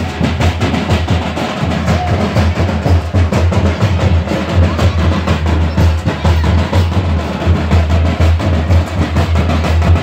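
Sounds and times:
drum-led folk music: 0.0 - 10.0.

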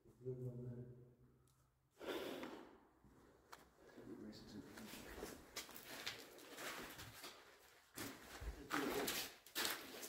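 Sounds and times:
footsteps crunching on paper: 4.7 - 10.0.

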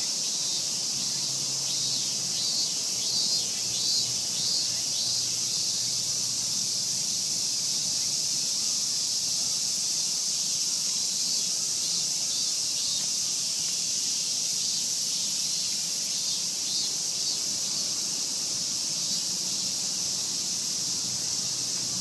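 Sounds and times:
high-pitched insect chorus: 0.0 - 22.0.

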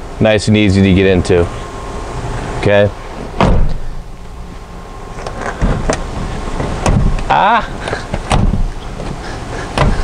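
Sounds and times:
clunks and knocks: 3.4 - 3.9, 5.3 - 6.0, 6.6 - 7.3, 7.9 - 10.0
loud thump of car seat: 3.4 - 3.9, 6.6 - 7.2, 8.2 - 8.7, 9.8 - 10.0.

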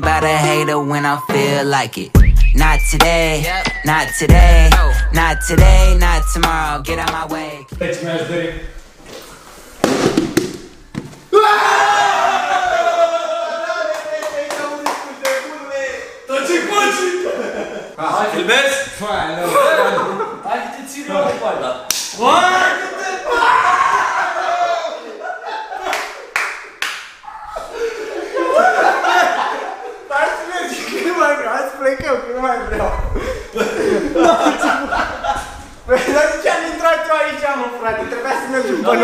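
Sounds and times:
men talking: 2.6 - 8.8, 12.5 - 23.6, 27.8 - 39.0
men laughing: 12.0 - 14.2, 16.7 - 18.4, 19.3 - 20.7, 23.2 - 26.4, 27.5 - 31.4, 32.6 - 36.8, 37.9 - 39.0
sharp hand smacks: 21.9 - 22.2.

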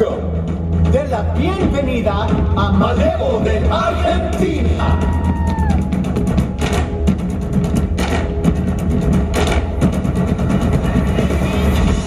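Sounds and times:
deep bass: 0.0 - 12.0
drums beaten in fast rhythm: 0.0 - 12.0.

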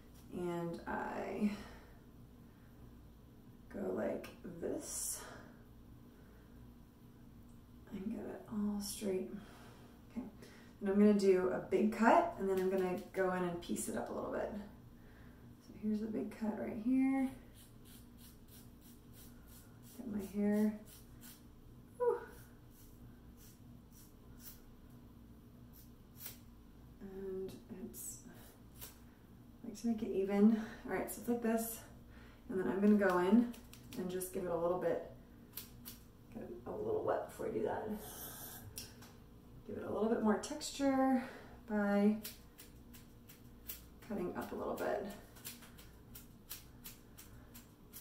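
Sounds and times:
scissors snipping hair: 17.6 - 20.3, 25.7 - 26.4, 35.5 - 36.1, 42.2 - 48.0.

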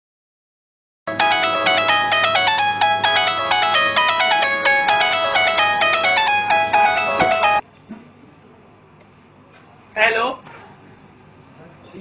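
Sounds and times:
electronic beeping ringtone melody: 1.1 - 7.6.

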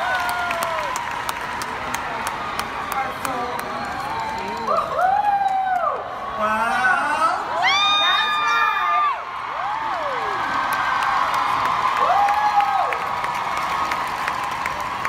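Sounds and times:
audience cheering: 0.0 - 6.2, 7.5 - 15.0
high-pitched whoops: 4.0 - 6.0.

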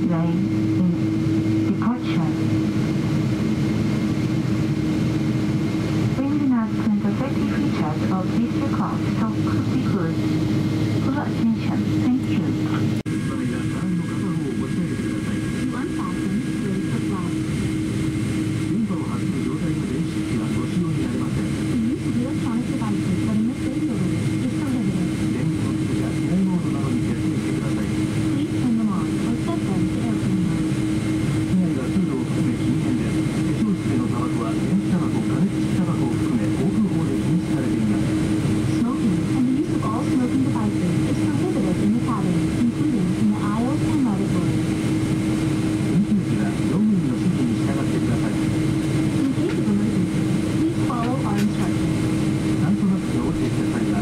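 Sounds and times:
jet engine drone in cabin: 0.0 - 54.0
passenger chatter: 0.0 - 54.0.

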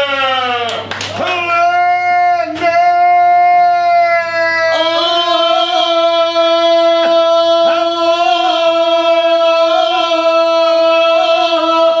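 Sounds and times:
men singing a sustained note: 4.2 - 12.0.

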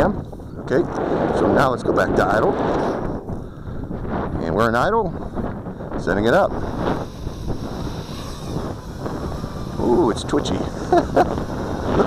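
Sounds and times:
wind buffeting microphone: 0.0 - 12.0
drone motors whining: 5.9 - 12.0.

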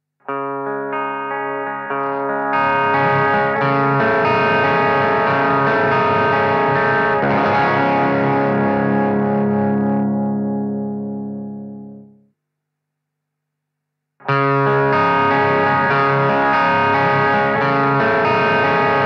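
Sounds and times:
distorted electric guitar chords: 0.2 - 12.3, 14.2 - 19.0.

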